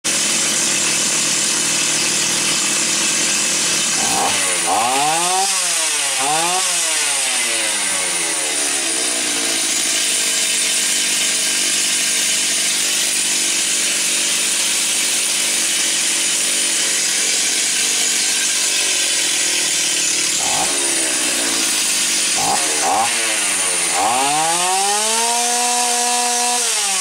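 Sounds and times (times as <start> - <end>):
chainsaw engine idling and revving: 0.0 - 27.0.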